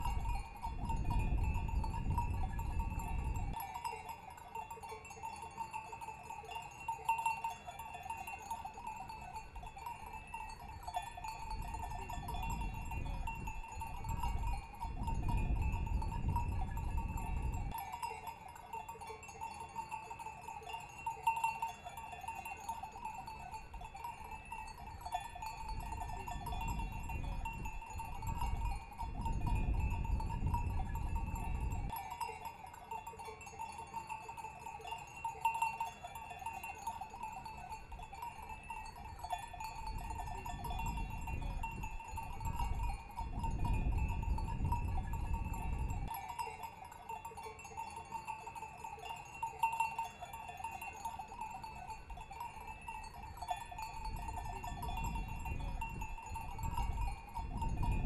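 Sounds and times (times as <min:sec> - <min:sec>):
livestock bells clanking: 0:00.0 - 0:58.0.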